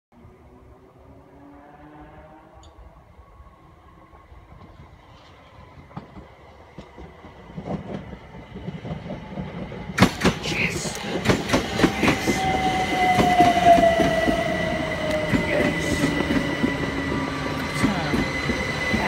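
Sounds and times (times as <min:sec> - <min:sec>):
train wheels clicking over rail joints: 0:04.6 - 0:19.0.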